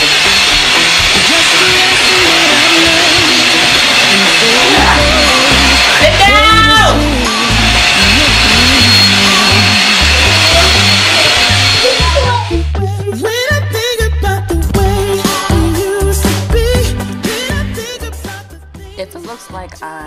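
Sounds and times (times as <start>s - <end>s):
vacuum cleaner whine: 0.0s - 12.8s
background music with singer: 0.0s - 20.0s.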